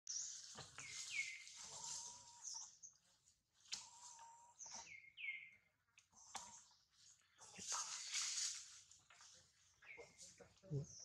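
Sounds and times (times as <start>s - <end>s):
high bird chirps: 3.9s - 6.9s.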